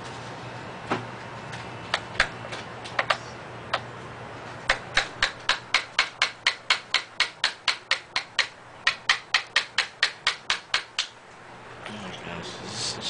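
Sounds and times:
hammer tapping nails into wood: 4.7s - 11.1s.

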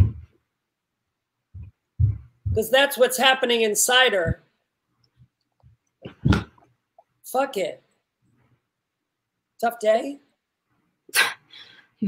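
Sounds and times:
faint breath: 11.4s - 12.0s.

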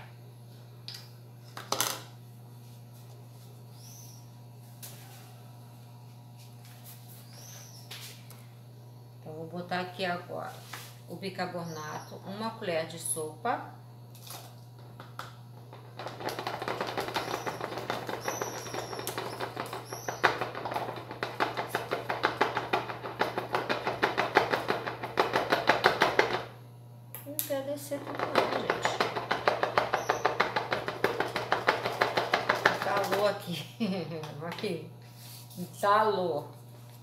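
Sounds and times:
tapping on plastic funnel: 28.1s - 33.3s.

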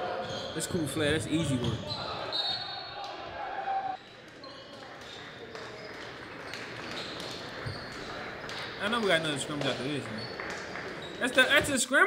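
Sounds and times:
players' voices echoing: 0.0s - 2.4s.

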